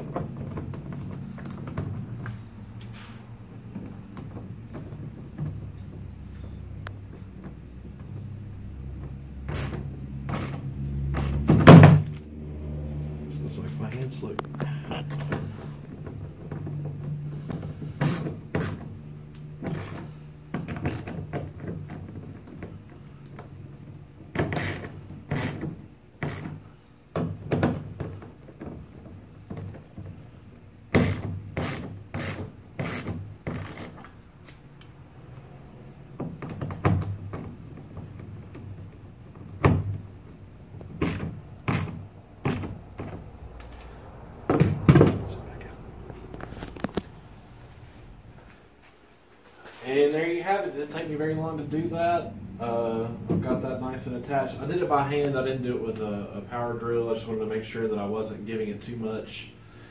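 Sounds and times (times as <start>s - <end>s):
ratcheting screwdriver clicking: 31.0s - 34.9s
low hum: 40.3s - 49.1s.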